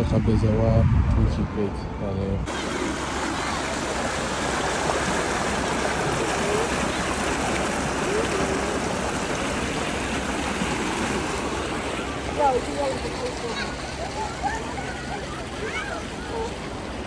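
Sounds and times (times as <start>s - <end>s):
faint voices: 1.7s - 10.0s, 10.8s - 17.0s.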